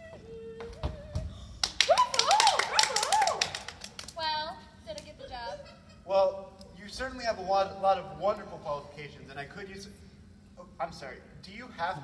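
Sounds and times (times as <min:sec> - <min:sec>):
wavering whoop: 0:00.0 - 0:03.7
audience clapping: 0:01.6 - 0:04.3.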